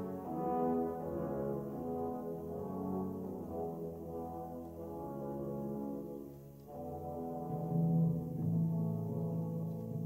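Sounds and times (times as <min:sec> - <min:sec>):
orchestra playing sustained chords: 0:00.0 - 0:10.0.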